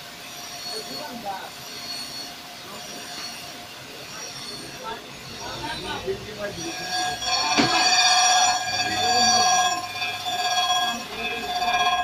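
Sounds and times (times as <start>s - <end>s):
grinding wheel high-pitched whine: 0.0s - 12.0s.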